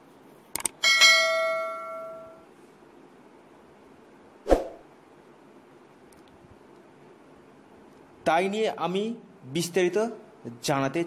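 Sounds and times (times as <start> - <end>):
notification bell ding: 0.8 - 2.4.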